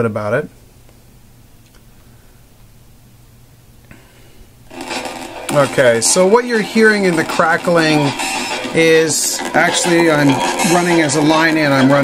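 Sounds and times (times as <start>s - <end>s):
faint steady hum: 0.0s - 10.7s
crackle: 4.7s - 12.0s
music playing: 4.7s - 12.0s.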